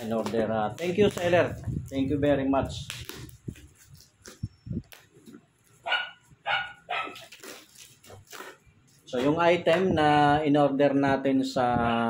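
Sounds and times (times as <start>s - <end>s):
cardboard being handled: 0.0s - 9.9s
dog barking: 5.8s - 7.3s.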